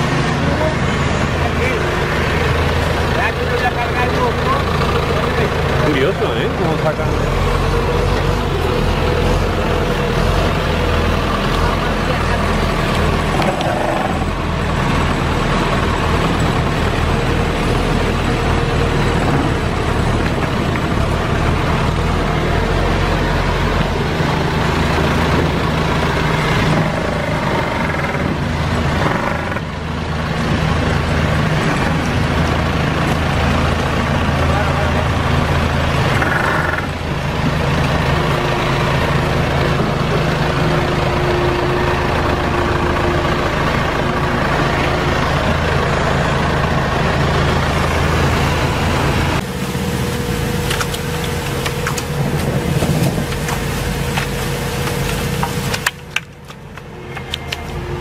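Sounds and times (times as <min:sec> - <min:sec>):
farm machine engine running: 0:00.0 - 0:58.0.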